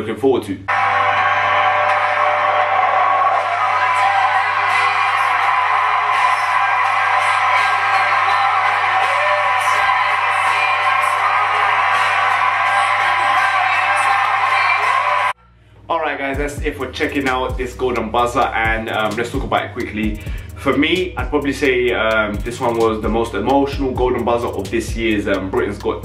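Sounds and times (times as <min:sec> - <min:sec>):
audience cheering and applauding: 0:00.7 - 0:15.4
loud music: 0:00.7 - 0:26.0.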